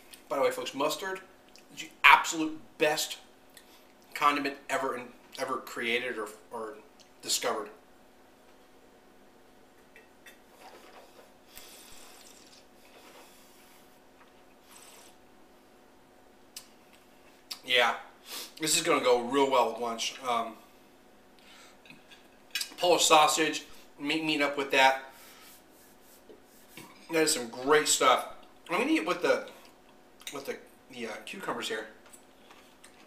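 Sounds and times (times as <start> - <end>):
low room hum: 0.0 - 33.0
breath and mouth noises: 10.7 - 14.0
palms rubbing together: 25.2 - 27.1.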